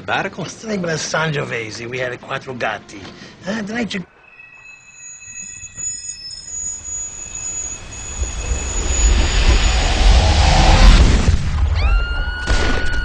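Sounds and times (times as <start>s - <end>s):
thin high ringing tones: 4.0s - 10.7s.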